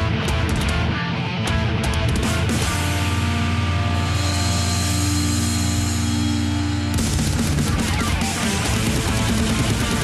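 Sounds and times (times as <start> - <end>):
heavy metal guitars and bass: 0.0 - 10.0.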